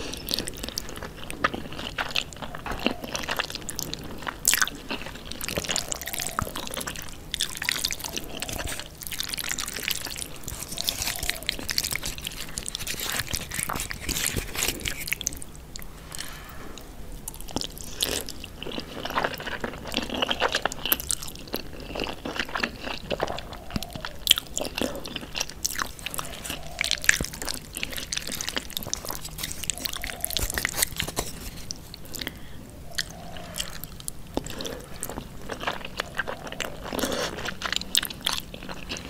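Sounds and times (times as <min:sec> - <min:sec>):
wet chewing of noodles: 0:00.0 - 0:39.0.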